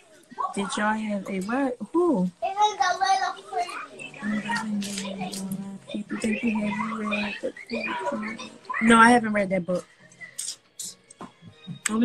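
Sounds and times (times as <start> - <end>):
voices talking: 0.0 - 12.0
woman saying a word: 4.2 - 8.4.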